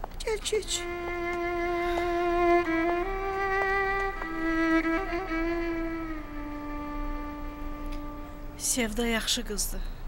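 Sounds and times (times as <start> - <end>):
violin holding long note: 0.6 - 8.8.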